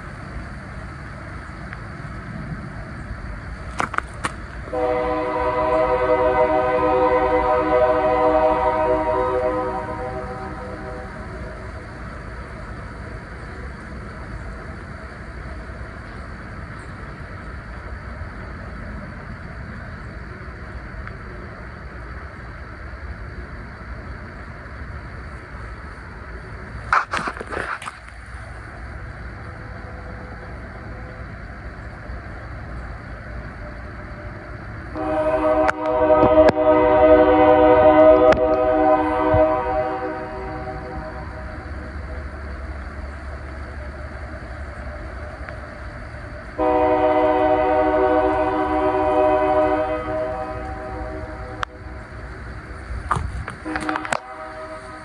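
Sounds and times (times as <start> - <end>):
constant low rumble: 0.0 - 55.0
train horn blasts: 4.7 - 11.6, 34.9 - 41.7, 46.6 - 52.0, 53.6 - 55.0.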